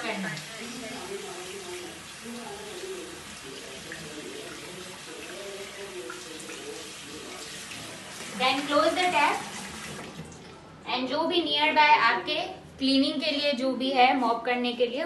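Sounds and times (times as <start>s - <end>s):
tap running into washbasin: 0.0s - 10.6s.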